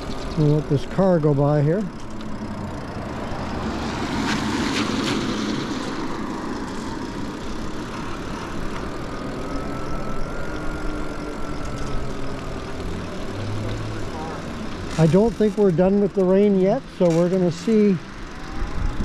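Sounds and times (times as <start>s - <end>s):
faint motor whine: 0.0s - 19.0s
wind and tyre noise: 0.0s - 19.0s.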